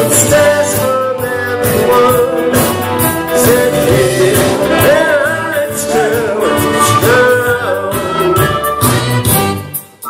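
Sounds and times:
live band playing loudly: 0:00.0 - 0:10.0
singer holding long notes: 0:00.5 - 0:08.8.

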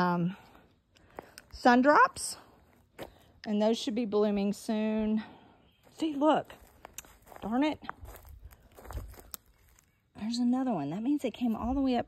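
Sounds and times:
footsteps on wood-chip mulch: 0:01.0 - 0:03.4, 0:05.8 - 0:10.4.

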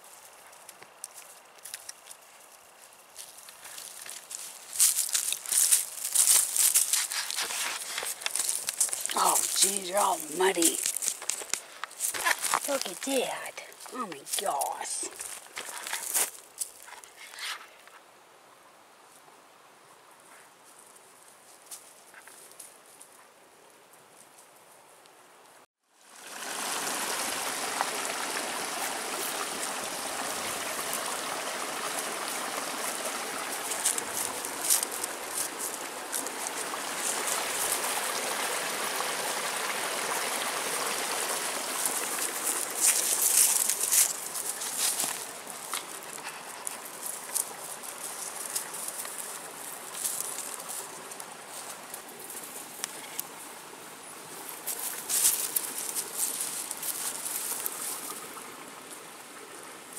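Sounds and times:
dogs crackling through undergrowth: 0:00.0 - 0:17.6, 0:32.9 - 0:37.8, 0:41.8 - 0:53.2, 0:54.4 - 0:58.1
creek water rushing: 0:03.1 - 0:16.9, 0:25.9 - 0:59.9.

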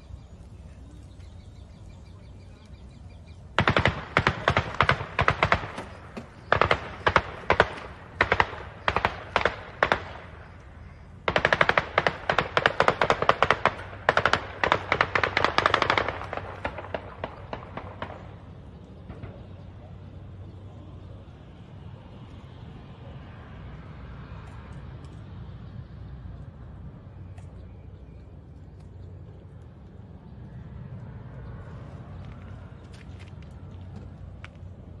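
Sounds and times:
automatic gunfire bursts: 0:03.6 - 0:10.4, 0:11.2 - 0:18.5.

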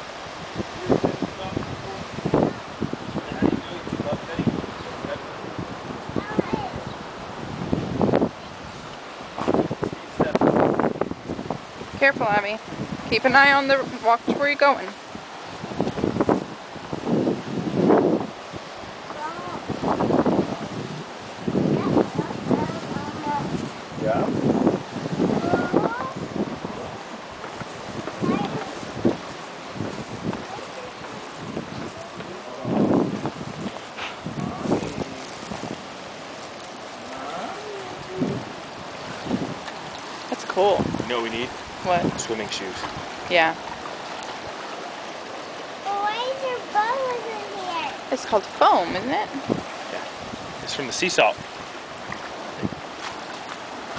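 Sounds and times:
sea surf breaking on rocks: 0:00.0 - 0:53.9
seawater rushing into pool: 0:00.0 - 0:53.9
wind buffeting microphone: 0:00.0 - 0:53.9.

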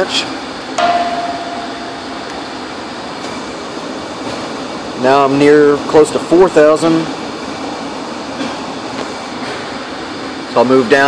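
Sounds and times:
mid-pitched tone: 0:00.8 - 0:02.8.

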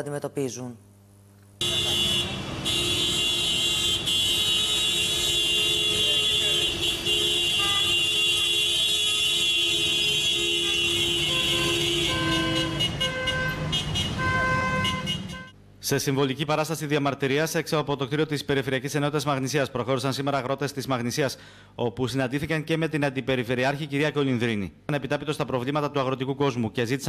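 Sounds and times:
long vehicle horn blaring: 0:01.6 - 0:15.6
short repeated horn toots: 0:01.6 - 0:15.6
street traffic noise: 0:01.6 - 0:15.8.

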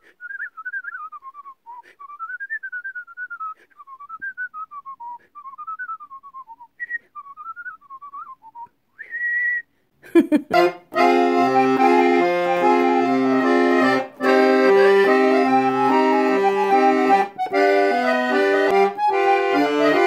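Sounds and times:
woman whistling a tune: 0:00.1 - 0:09.7.

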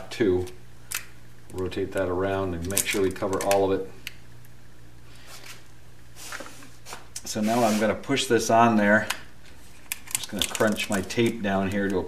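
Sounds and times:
steady low hum: 0:00.0 - 0:12.0
brush rubbing on shaft: 0:06.2 - 0:08.0.

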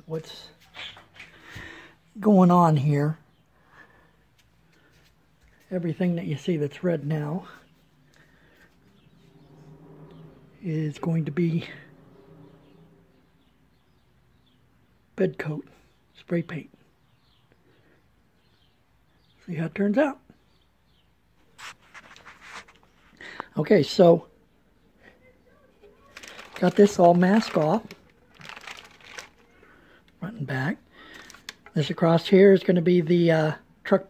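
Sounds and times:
masking paper crinkling: 0:21.5 - 0:23.2, 0:25.8 - 0:30.2, 0:31.0 - 0:32.0.

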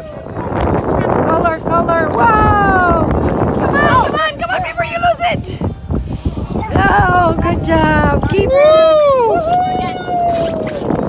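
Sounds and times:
wind rumbling on microphone: 0:00.0 - 0:11.0
people whooping and calling out: 0:08.3 - 0:11.0.

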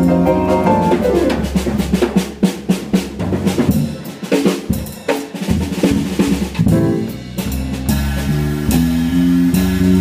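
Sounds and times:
jazzy small band playing: 0:00.0 - 0:10.0.

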